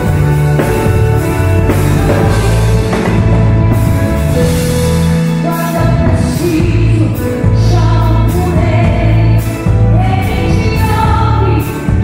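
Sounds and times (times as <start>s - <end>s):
electric guitar: 0.0s - 12.0s
sustained bass notes: 0.0s - 12.0s
woman singing into a microphone: 1.8s - 2.8s, 5.4s - 12.0s.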